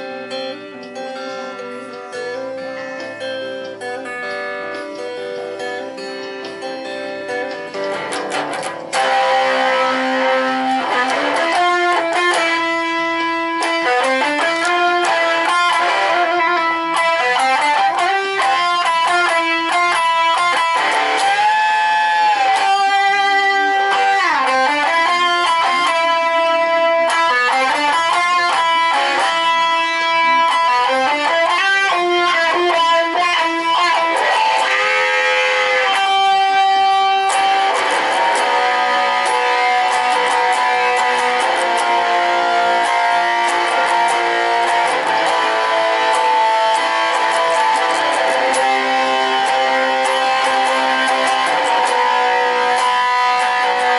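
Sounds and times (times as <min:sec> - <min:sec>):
electric guitar melody: 0:00.0 - 0:53.9.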